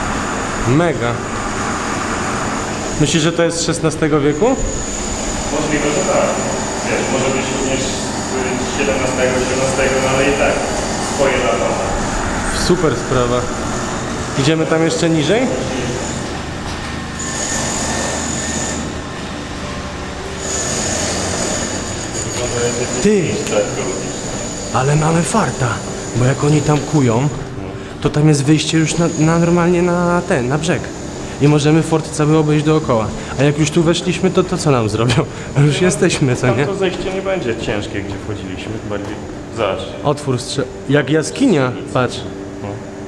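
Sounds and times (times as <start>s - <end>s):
generator drone: 0.0s - 43.0s
high whine: 0.0s - 43.0s.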